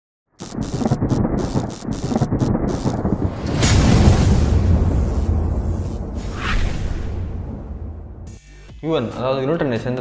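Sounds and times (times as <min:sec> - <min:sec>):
deep thunder rumble: 0:00.6 - 0:08.3
crash of thunder: 0:01.0 - 0:08.3
rain-like hiss: 0:02.7 - 0:07.4.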